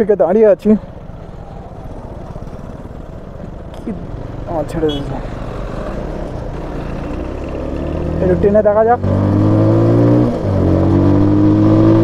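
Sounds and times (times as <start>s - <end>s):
wind and road rumble: 0.0s - 12.0s
motorcycle engine running: 0.1s - 9.8s.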